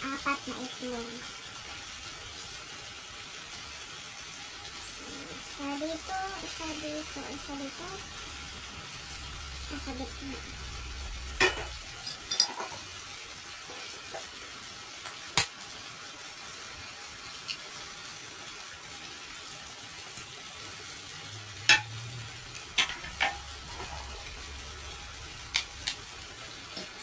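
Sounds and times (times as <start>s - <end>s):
sauce sizzling in a frying pan: 0.0s - 27.0s
utensils clinking in a steel bowl: 11.4s - 12.8s.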